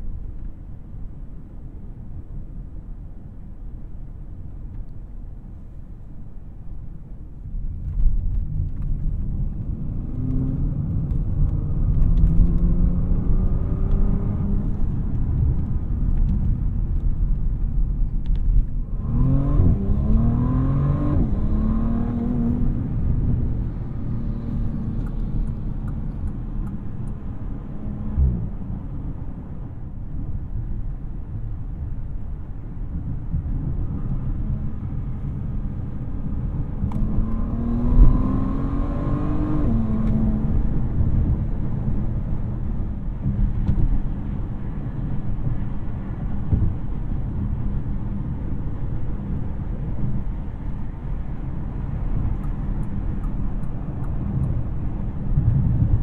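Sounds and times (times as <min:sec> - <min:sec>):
road noise: 0:00.0 - 0:56.0
car engine revving through upshifts: 0:11.8 - 0:14.8, 0:19.0 - 0:28.6, 0:36.7 - 0:41.0.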